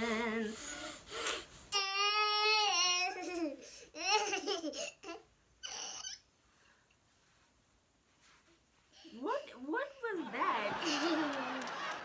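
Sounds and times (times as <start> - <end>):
toddler laughing and babbling: 1.8 - 6.2.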